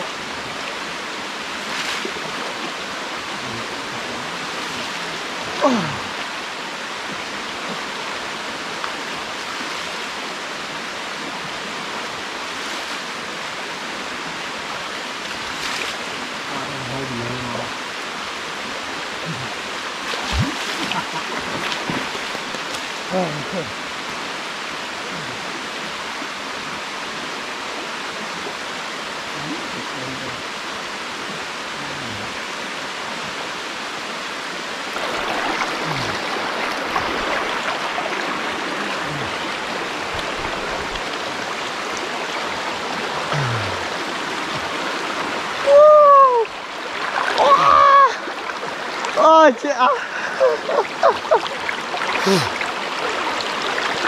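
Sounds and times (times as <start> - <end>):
water splashing: 0.0 - 10.2, 15.1 - 24.3, 34.7 - 54.0
stream running over rocks: 0.0 - 54.0
men's voices: 16.5 - 17.7, 23.1 - 23.8, 29.4 - 30.4, 38.8 - 39.4, 52.2 - 52.6.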